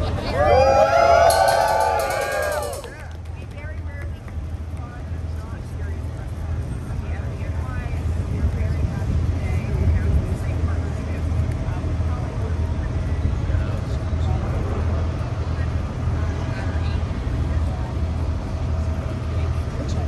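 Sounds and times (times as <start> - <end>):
crowd chatter: 0.0 - 20.0
low steady rumble: 0.0 - 20.0.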